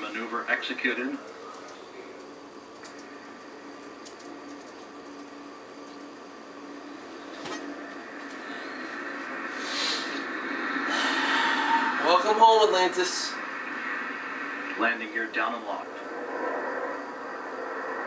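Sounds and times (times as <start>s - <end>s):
broadcast commentary: 0.0s - 3.0s, 11.7s - 16.4s
television speaker hum and hiss: 0.0s - 18.0s.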